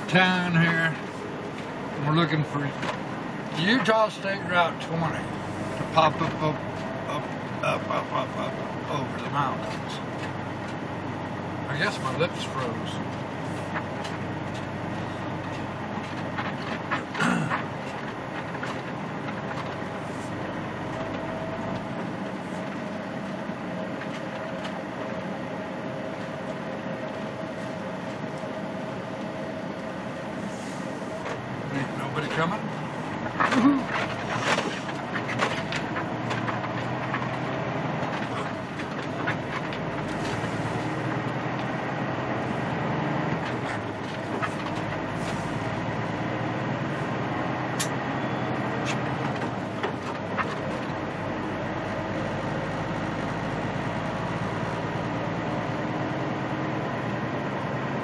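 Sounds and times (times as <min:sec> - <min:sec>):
truck engine and road noise: 0:00.0 - 0:58.0.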